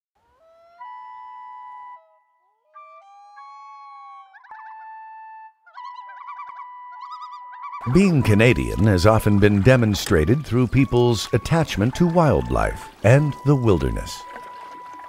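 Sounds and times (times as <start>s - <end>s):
loon wails: 0.2s - 9.2s
loon tremolo calls: 0.2s - 15.0s.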